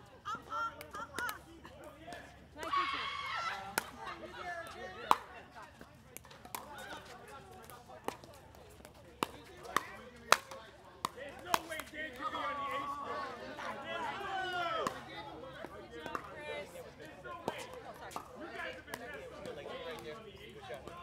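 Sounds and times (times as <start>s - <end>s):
paddles hitting plastic ball: 4.7s - 12.4s
ball bouncing on court: 7.6s - 11.9s.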